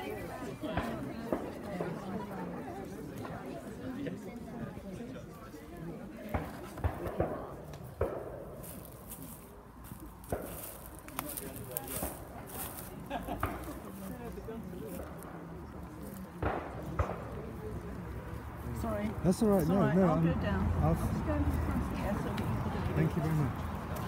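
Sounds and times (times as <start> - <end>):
crowd chatter: 0.0 - 24.0.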